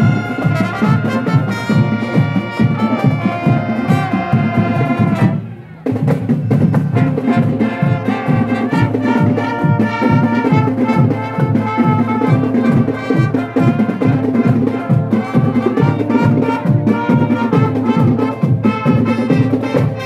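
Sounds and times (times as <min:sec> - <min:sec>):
marching band brass: 0:00.0 - 0:20.0
marching drums: 0:00.0 - 0:20.0.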